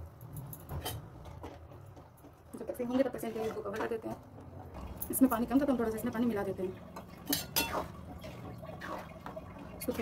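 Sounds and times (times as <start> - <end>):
stirring watery gravy: 6.0 - 10.0
metal spoon clinking on pan: 7.3 - 7.8.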